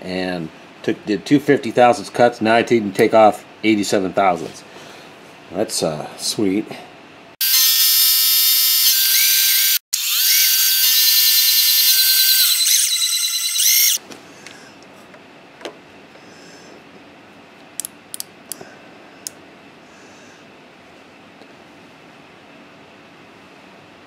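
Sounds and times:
milling machine high-pitched whine: 7.4 - 14.0.

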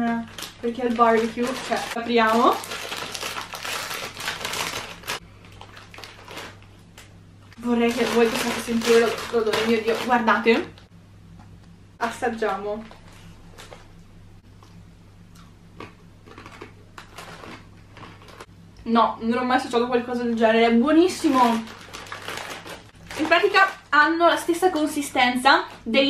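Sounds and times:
plastic bag ripping open: 0.0 - 10.7, 16.5 - 18.5, 21.0 - 23.9
plastic bag crackling: 0.0 - 10.8, 17.0 - 18.5, 20.9 - 25.9
steady low hum: 0.0 - 26.0
chewing crunchy chips: 15.4 - 18.5.

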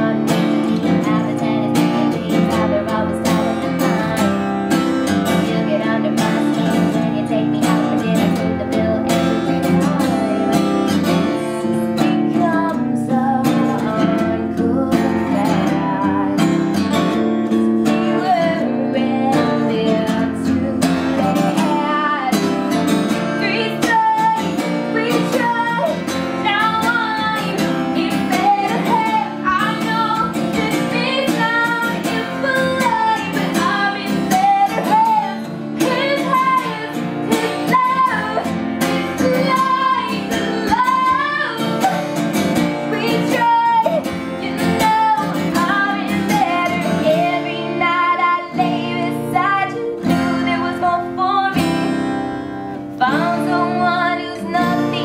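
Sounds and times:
strummed guitar: 0.0 - 55.0
woman singing: 0.0 - 55.0.

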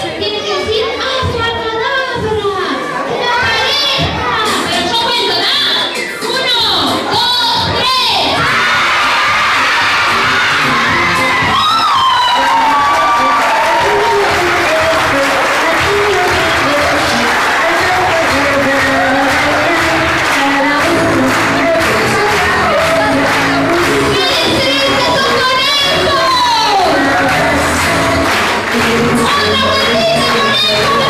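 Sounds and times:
children cheering and shouting: 0.0 - 31.0
music playing: 4.3 - 31.0.

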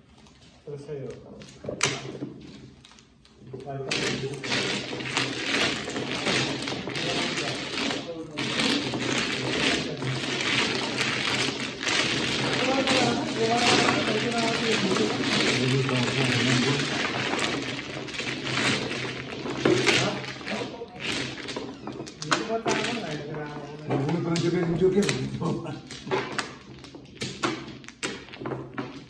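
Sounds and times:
mahjong tiles clattering: 1.8 - 29.0.

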